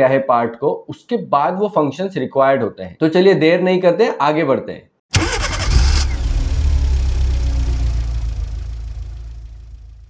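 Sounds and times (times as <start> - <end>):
low rumble: 6.1 - 10.0.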